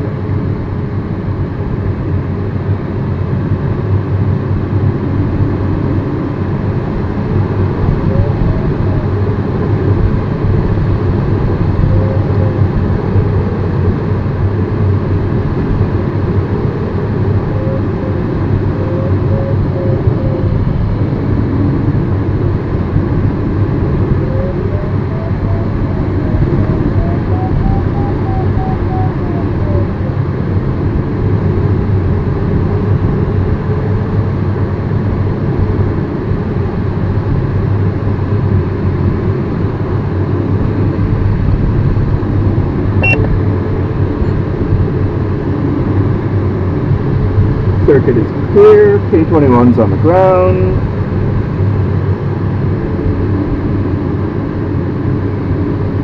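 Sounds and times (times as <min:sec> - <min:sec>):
airflow rushing around cockpit: 0:00.0 - 0:56.0
variometer tone and beeps: 0:43.0 - 0:43.4, 0:44.2 - 0:44.4.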